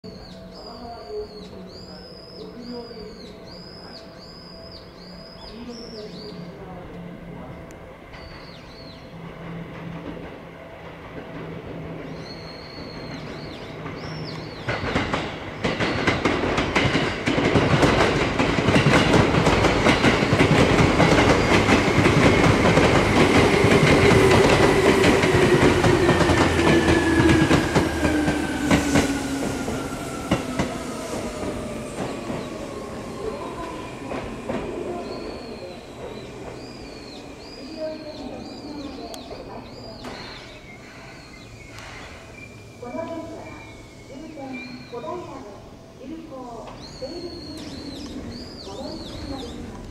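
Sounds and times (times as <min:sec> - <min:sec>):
birds chirping: 0:00.0 - 0:49.9
wheels clacking over rail joints: 0:09.4 - 0:42.3
train braking whine: 0:21.2 - 0:39.5.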